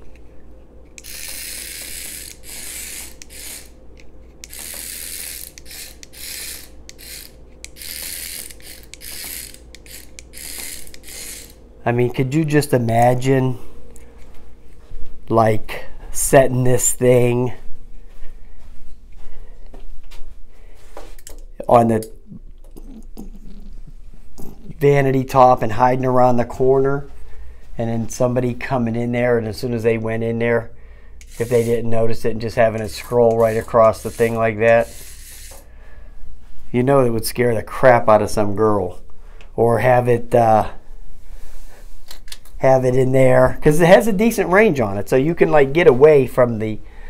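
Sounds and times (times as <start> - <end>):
toy motor buzzing: 1.0 - 3.8, 4.4 - 11.6, 31.2 - 32.0, 32.9 - 35.7.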